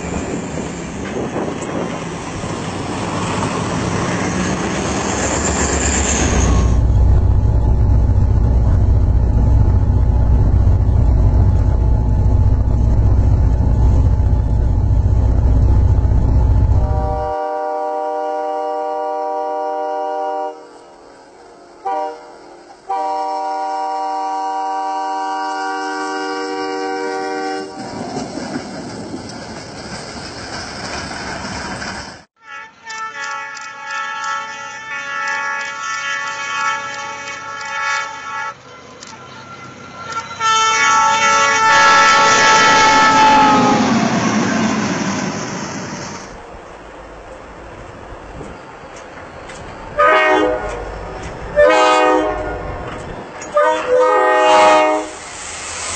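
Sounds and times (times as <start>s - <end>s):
train rushing through snow: 0.0s - 55.9s
locomotive air horn blasts: 16.8s - 20.9s, 21.8s - 27.9s, 32.4s - 44.0s, 50.0s - 50.9s, 51.5s - 52.8s, 53.5s - 55.2s.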